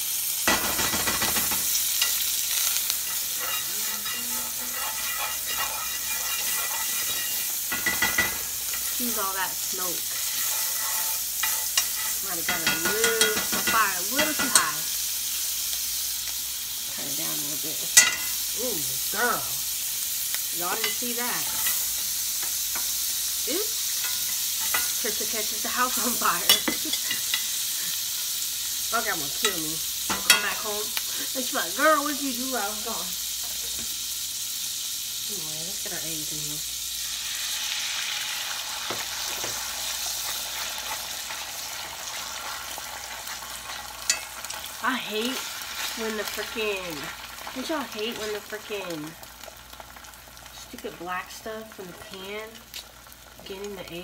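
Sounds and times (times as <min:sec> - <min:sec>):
food sizzling in a frying pan: 0:00.0 - 0:54.0.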